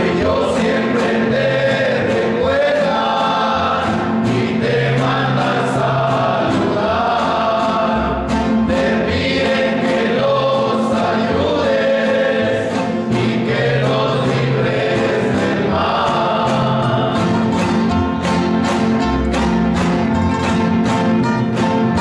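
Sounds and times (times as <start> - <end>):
men singing a hymn in harmony: 0.0 - 17.7
strummed acoustic guitars: 0.0 - 22.0.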